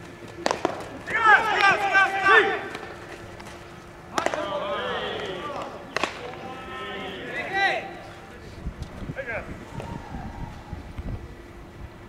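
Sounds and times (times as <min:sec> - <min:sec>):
baseball bat crack: 0:00.2 - 0:06.8
player shouting: 0:01.1 - 0:02.8, 0:04.1 - 0:08.0.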